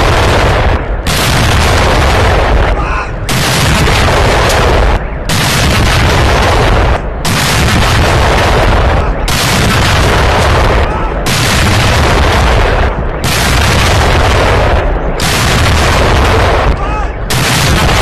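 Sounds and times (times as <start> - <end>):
field gun blasts: 0.0 - 18.0.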